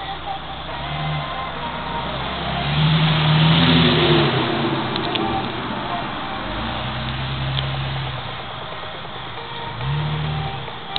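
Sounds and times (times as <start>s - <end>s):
vehicle driving past: 0.0s - 8.6s.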